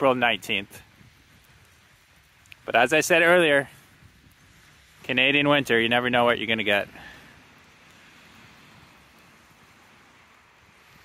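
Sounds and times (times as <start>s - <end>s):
distant street traffic hiss: 4.6s - 11.0s.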